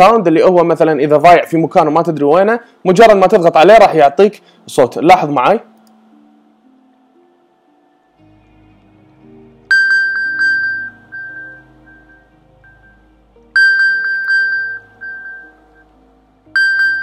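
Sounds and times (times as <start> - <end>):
phone alert high pings: 9.7 - 13.0, 13.6 - 15.6, 16.6 - 17.0.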